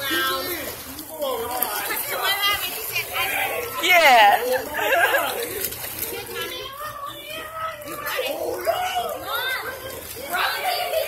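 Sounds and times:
children and adults talking: 0.0s - 11.0s
children playing in pool: 0.0s - 11.0s.

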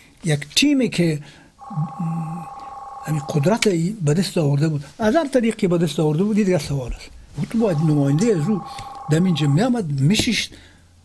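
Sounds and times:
steady two-pitch electronic tone: 1.6s - 3.8s, 7.4s - 9.8s
man talking: 3.1s - 10.5s.

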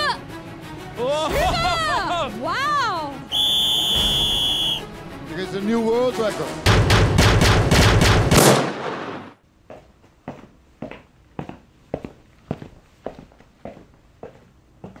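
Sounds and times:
sharp percussive hits: 6.6s - 9.3s.

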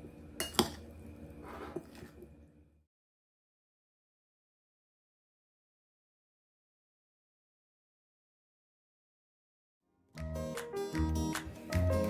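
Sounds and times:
fork scraping bowl: 1.4s - 2.1s.

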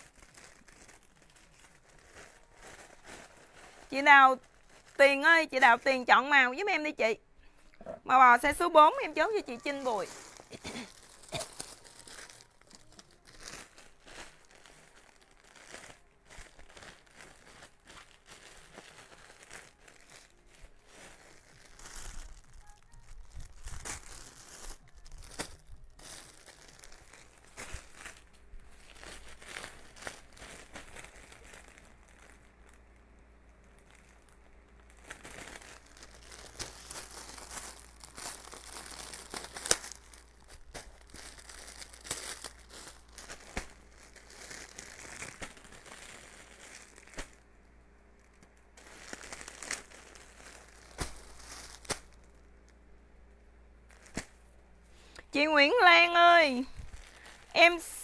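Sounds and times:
plastic packaging crinkling: 0.0s - 6.7s, 8.1s - 53.0s, 53.8s - 58.0s
sharp plastic crackle: 0.0s - 7.0s, 8.1s - 58.0s.

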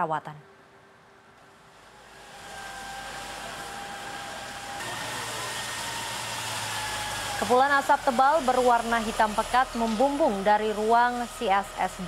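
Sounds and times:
faint pump whine: 0.5s - 12.0s
hose jet spraying water: 1.7s - 12.0s.

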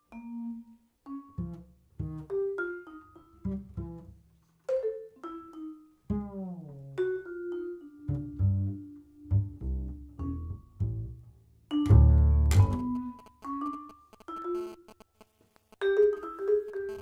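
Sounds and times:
vibraphone notes: 0.0s - 4.0s, 4.7s - 14.8s
plucked walking bass: 1.4s - 2.4s, 3.4s - 4.2s, 6.1s - 7.1s, 8.1s - 13.1s.

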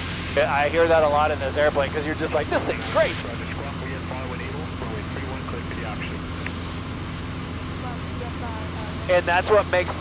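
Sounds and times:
airplane engine droning: 0.0s - 10.0s
faint voices: 0.3s - 6.5s, 7.8s - 10.0s.

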